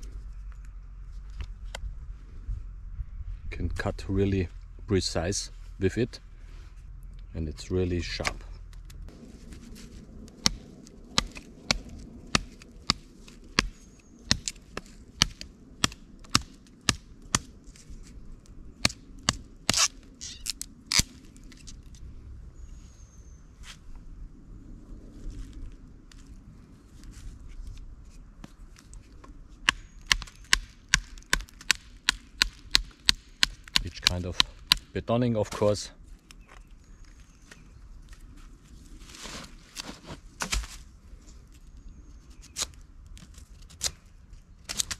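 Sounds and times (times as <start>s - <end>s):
knife chopping wood: 29.6s - 34.9s.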